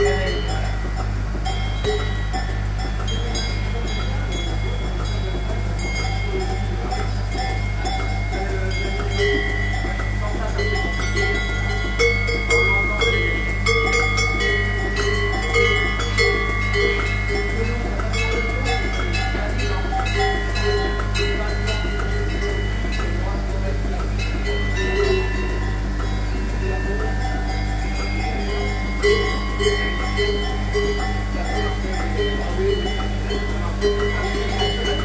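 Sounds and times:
bell-like ringing: 0:00.0 - 0:35.0
metallic clinks: 0:00.0 - 0:35.0
rhythmic pulsator pulsing: 0:00.0 - 0:35.0
vacuum system low hum: 0:00.0 - 0:35.0.

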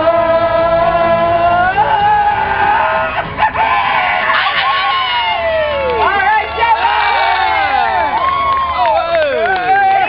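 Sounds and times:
man shouting into a microphone: 0:04.3 - 0:08.1.

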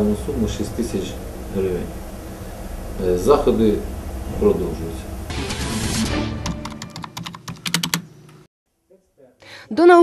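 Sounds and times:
fast typing on keyboard: 0:06.4 - 0:08.1.

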